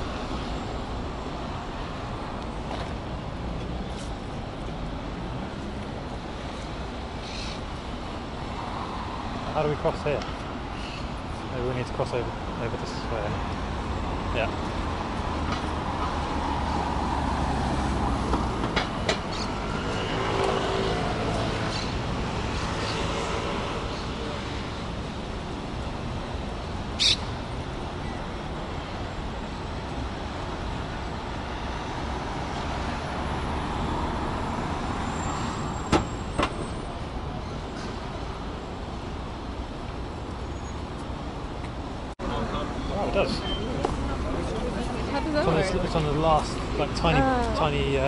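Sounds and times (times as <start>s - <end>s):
cars and scooter passing: 0.0s - 48.0s
road noise and engine hum: 0.0s - 48.0s.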